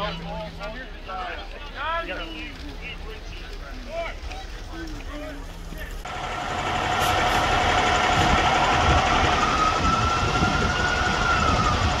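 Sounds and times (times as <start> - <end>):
heavy engine rumble: 0.0 - 12.0
emergency vehicle siren: 6.1 - 12.0.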